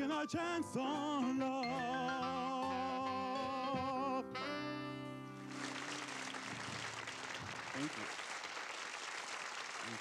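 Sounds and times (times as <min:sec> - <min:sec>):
man singing with vibrato: 0:00.0 - 0:05.0
audience applause: 0:05.5 - 0:10.0.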